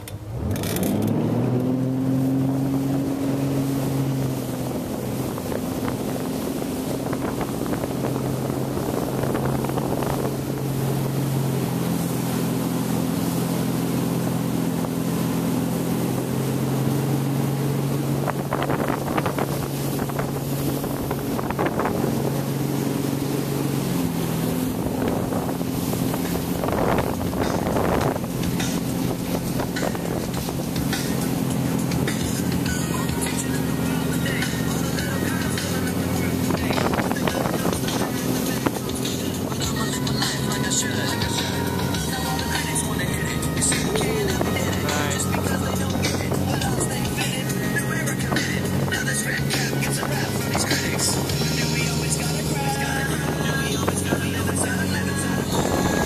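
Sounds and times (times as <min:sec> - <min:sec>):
boat engine running: 0:00.0 - 0:56.0
wind and water rushing: 0:00.0 - 0:56.0.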